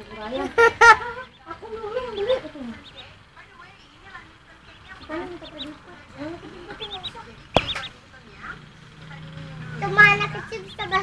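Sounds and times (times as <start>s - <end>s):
duckling peeping: 0.0s - 11.0s.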